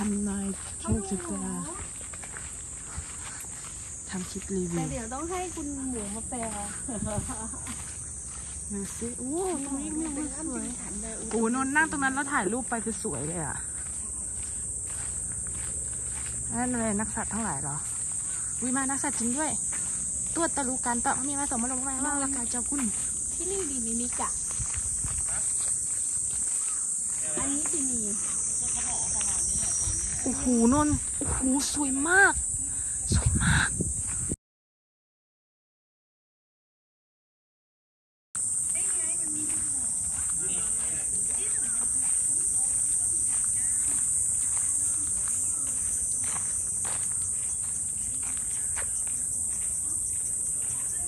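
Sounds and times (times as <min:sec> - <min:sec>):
footsteps on dirt path: 0:00.0 - 0:34.4, 0:38.4 - 0:51.0
insects droning: 0:00.0 - 0:34.4, 0:38.4 - 0:51.0
faint voices: 0:38.7 - 0:51.0.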